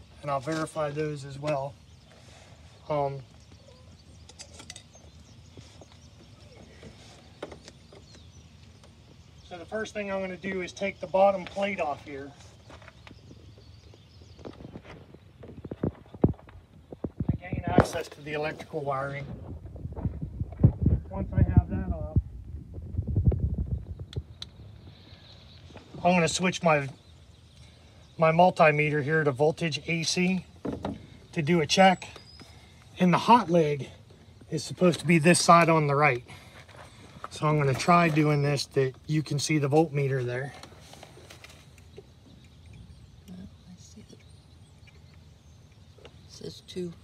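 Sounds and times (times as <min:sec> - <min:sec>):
low thumps and rumbling: 0:12.9 - 0:25.0.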